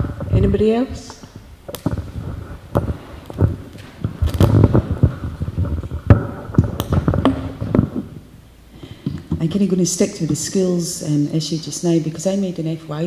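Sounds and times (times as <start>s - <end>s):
microphone handling thumps: 0.0s - 9.5s.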